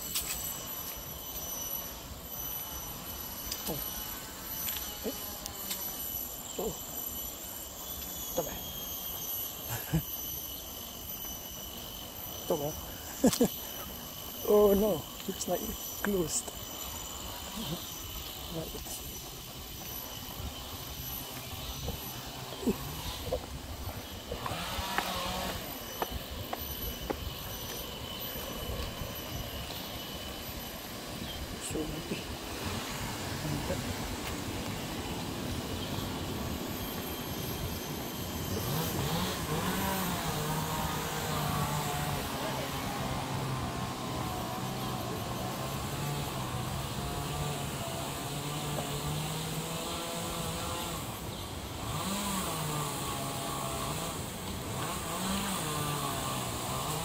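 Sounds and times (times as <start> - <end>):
steady high-pitched tones: 0.0 - 48.3
motor droning: 0.0 - 57.0.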